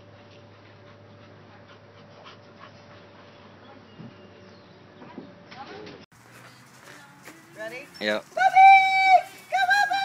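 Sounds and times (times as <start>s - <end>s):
steady low hum: 0.0s - 5.5s
dogs scuffing and breathing: 6.2s - 8.4s.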